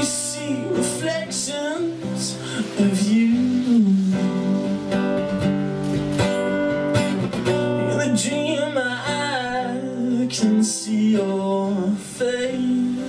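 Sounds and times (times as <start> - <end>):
man singing: 0.0 - 5.2, 7.6 - 13.0
acoustic guitar strumming: 0.0 - 13.0.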